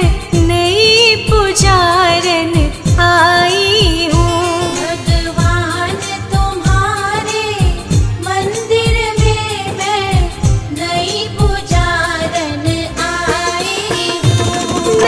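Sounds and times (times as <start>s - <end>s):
person singing devotional song: 0.0s - 15.0s
regular drum beat: 0.0s - 15.0s.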